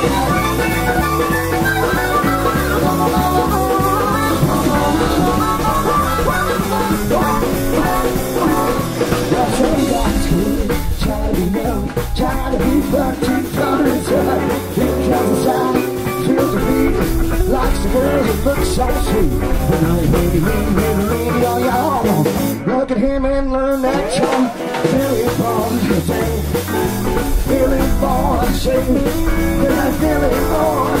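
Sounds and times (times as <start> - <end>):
bass guitar: 0.0 - 31.0
drum kit: 0.0 - 31.0
electric guitar bending notes: 0.0 - 31.0.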